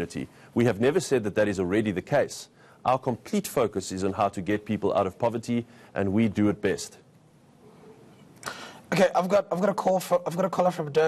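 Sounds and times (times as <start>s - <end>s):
man speaking: 0.0s - 7.0s, 8.9s - 11.0s.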